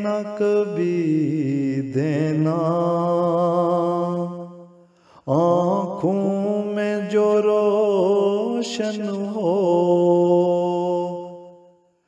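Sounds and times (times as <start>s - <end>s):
man singing a long note: 5.3s - 11.8s.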